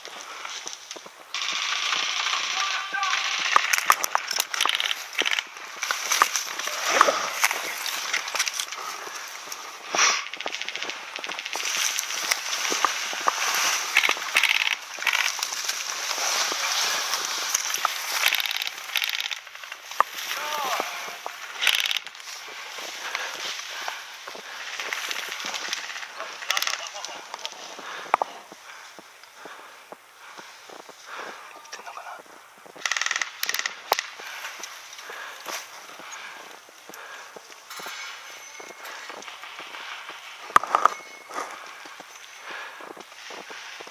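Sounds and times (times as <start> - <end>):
dry brush rustling and crackling: 0.0 - 43.9
voices: 1.4 - 21.7, 22.3 - 32.4.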